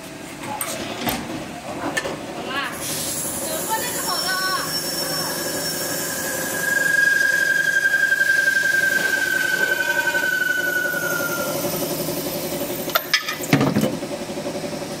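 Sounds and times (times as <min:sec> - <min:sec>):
machine running hum: 0:02.8 - 0:15.0
cutter squealing on metal pipe: 0:02.9 - 0:13.1.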